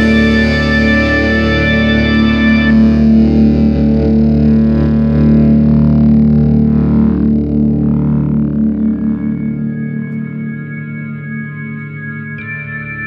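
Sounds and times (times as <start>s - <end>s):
distorted electric guitar chord: 0.0s - 13.0s.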